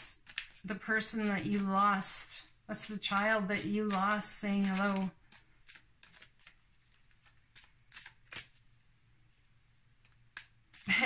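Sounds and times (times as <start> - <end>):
cards being shuffled: 0.0 - 8.8, 9.4 - 11.0.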